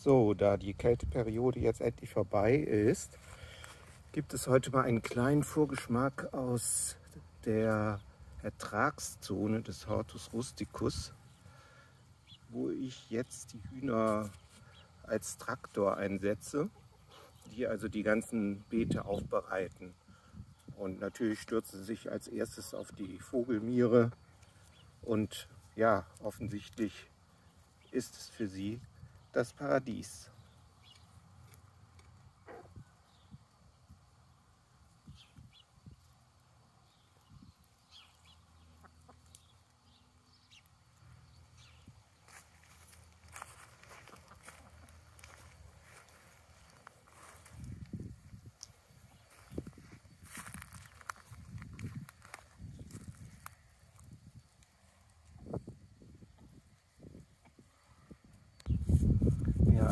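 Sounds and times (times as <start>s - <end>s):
rustles: 1.1s - 34.1s, 34.7s - 59.9s
chickens clucking: 16.7s - 17.6s, 32.4s - 32.8s, 38.1s - 39.8s, 43.8s - 45.2s.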